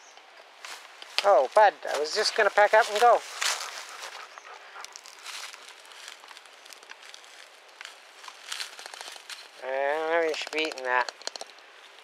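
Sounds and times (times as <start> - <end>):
dog rustling in grass and leaves: 0.6 - 10.2.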